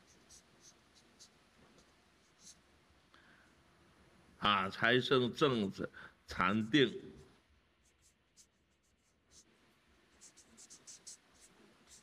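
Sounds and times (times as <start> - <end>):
marker scratching on paper: 0.0 - 2.7, 7.8 - 12.0.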